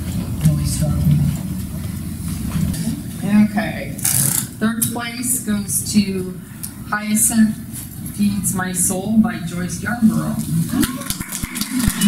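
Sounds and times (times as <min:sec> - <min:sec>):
low rumble of background noise: 0:00.0 - 0:12.0.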